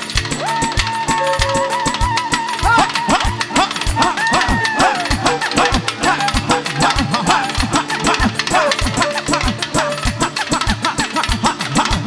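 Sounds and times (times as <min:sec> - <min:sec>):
loud live band music: 0:00.0 - 0:12.0.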